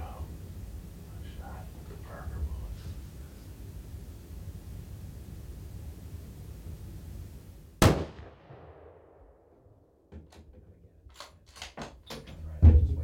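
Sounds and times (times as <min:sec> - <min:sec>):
rifle shot: 0:07.8 - 0:09.6
heavy thump: 0:12.6 - 0:13.0.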